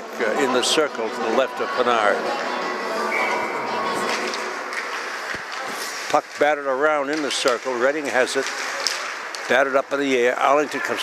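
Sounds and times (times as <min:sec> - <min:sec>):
ice rink background noise: 0:00.0 - 0:11.0.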